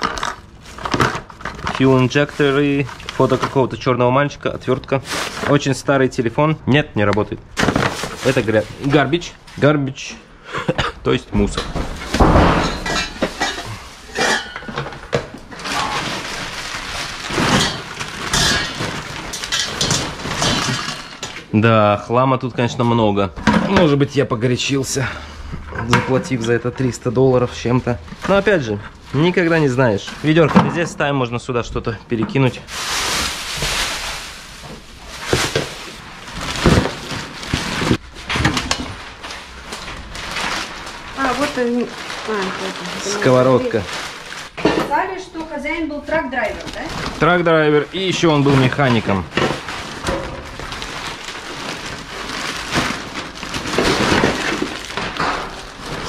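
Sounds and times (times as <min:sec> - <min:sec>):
plastic bag rustling: 0:00.0 - 0:06.4, 0:07.4 - 0:10.0, 0:11.1 - 0:21.7, 0:22.9 - 0:56.0.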